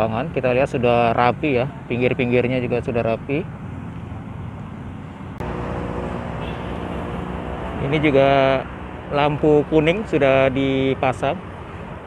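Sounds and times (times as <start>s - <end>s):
distant road traffic rumble: 0.0s - 12.0s.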